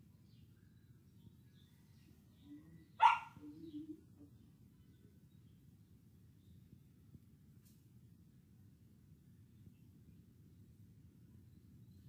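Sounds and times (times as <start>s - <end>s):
dog barking: 3.0s - 3.5s.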